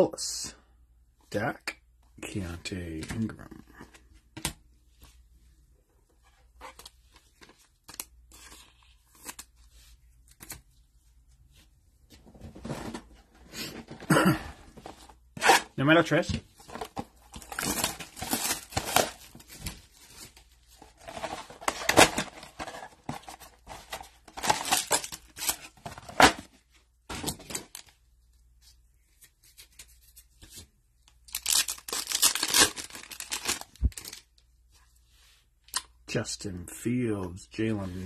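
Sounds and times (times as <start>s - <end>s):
cardboard and wrappers tearing: 17.3s - 19.8s, 31.3s - 34.2s
wrapper crinkling: 31.3s - 34.3s.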